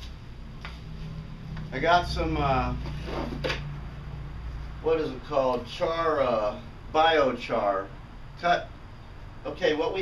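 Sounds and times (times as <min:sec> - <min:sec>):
low background hum: 0:00.0 - 0:10.0
man talking: 0:01.7 - 0:02.8, 0:09.4 - 0:10.0.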